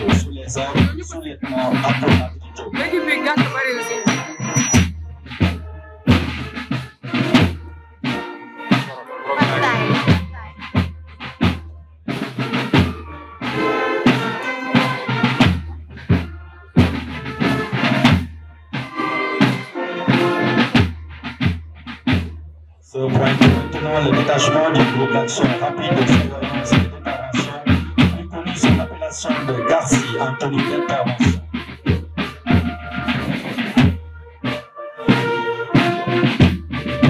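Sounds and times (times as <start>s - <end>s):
snare drum beat: 0.0s - 22.4s, 23.1s - 37.0s
marching band music: 0.0s - 37.0s.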